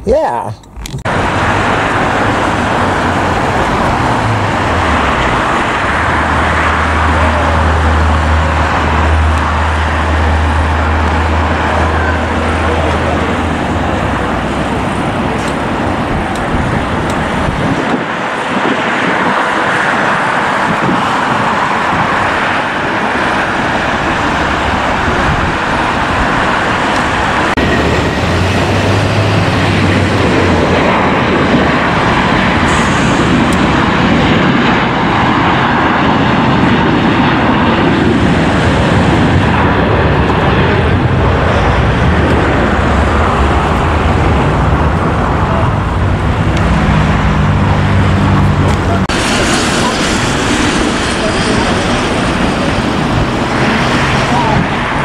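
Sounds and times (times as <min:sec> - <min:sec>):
road traffic noise: 0:00.0 - 0:55.0
heavy vehicle engine hum: 0:00.6 - 0:55.0.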